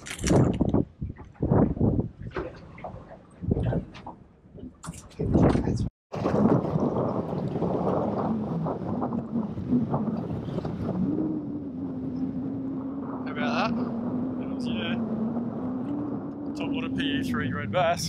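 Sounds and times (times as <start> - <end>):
wind noise on microphone: 0.0 - 18.0.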